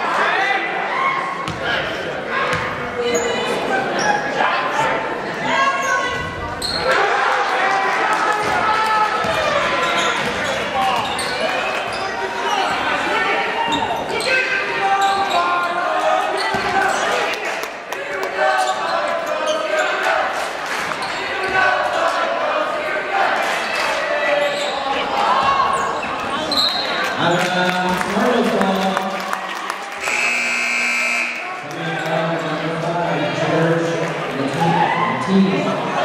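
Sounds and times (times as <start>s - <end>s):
players and spectators calling out: 0.0s - 28.6s, 29.2s - 36.0s.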